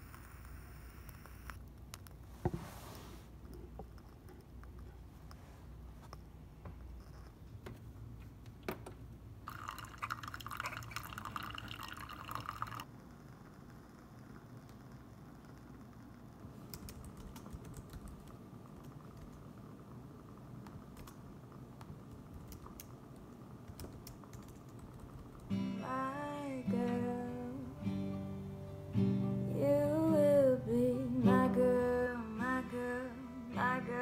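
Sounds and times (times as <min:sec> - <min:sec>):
low machine hum: 0:03.2 - 0:34.0
coffee pouring into a mug: 0:09.4 - 0:12.9
acoustic guitar: 0:25.4 - 0:34.0
person singing: 0:25.6 - 0:34.0.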